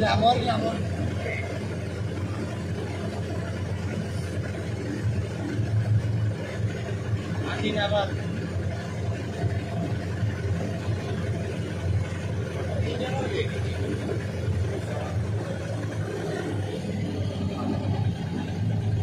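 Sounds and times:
motorboat engine humming: 0:00.0 - 0:19.0
water rushing along hull: 0:00.0 - 0:19.0.

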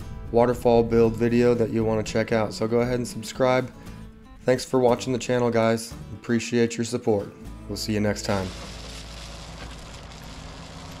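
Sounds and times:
track loader engine running: 0:08.3 - 0:11.0.

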